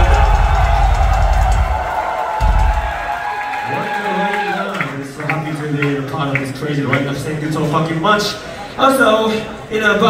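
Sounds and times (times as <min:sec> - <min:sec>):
crowd cheering: 0:00.0 - 0:06.5.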